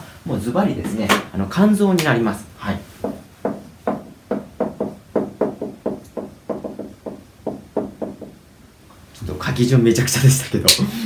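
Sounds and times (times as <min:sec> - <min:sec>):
marker tapping on whiteboard: 0:03.0 - 0:08.4.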